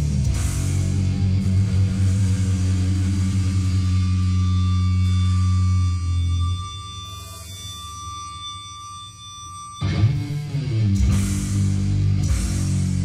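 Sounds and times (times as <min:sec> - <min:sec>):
metal band sustained chord: 0:00.0 - 0:13.0
cymbals ringing: 0:00.4 - 0:13.0.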